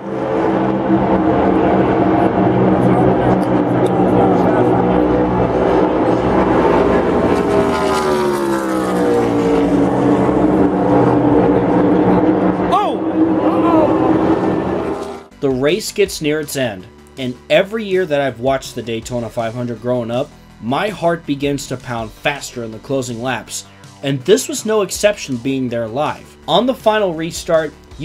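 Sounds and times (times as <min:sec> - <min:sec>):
race car engines passing: 0:00.0 - 0:15.4.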